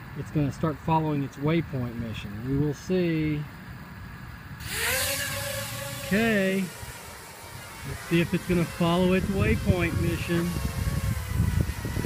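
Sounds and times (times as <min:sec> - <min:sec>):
propeller rush: 0:04.3 - 0:12.0
drone motors whining: 0:04.6 - 0:12.0.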